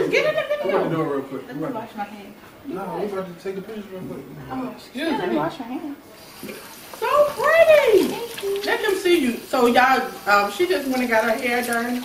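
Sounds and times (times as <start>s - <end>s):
tap running: 6.2s - 12.0s.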